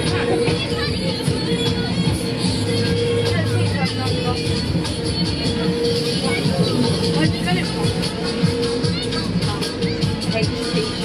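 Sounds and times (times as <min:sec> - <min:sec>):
crowd chatter: 0:00.0 - 0:11.0
fairground music: 0:00.0 - 0:11.0.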